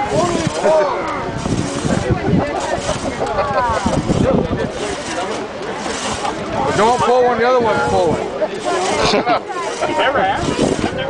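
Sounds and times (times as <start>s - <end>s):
crosscut saw rasping through log: 0.0s - 11.0s
voices calling out: 0.0s - 11.0s.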